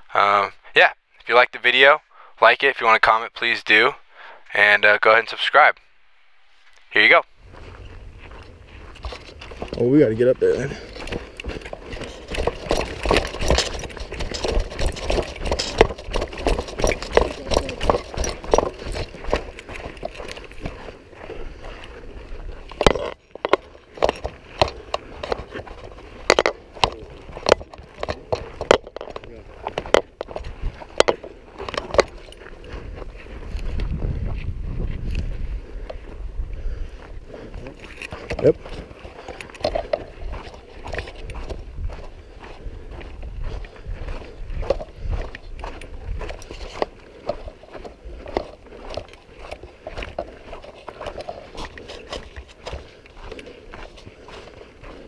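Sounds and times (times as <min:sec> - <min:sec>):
footsteps on dirt: 0:02.1 - 0:55.0
rifle and gear clicking: 0:10.8 - 0:32.7, 0:37.6 - 0:42.1, 0:44.6 - 0:55.0.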